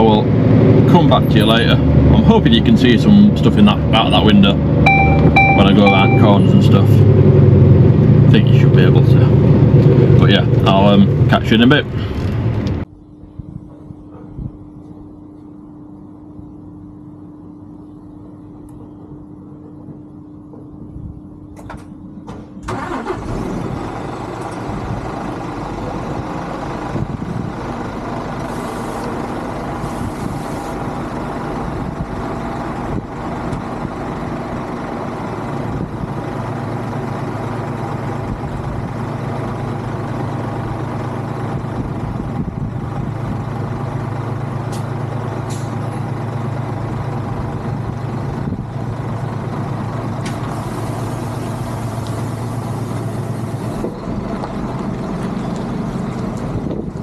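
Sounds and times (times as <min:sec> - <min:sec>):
diesel engine starting and idling: 0:00.0 - 0:12.9, 0:21.3 - 0:57.0
deep steady drone: 0:00.0 - 0:22.2.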